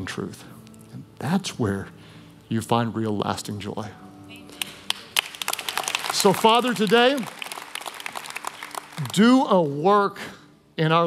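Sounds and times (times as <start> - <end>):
congregation hand claps: 4.5 - 9.9.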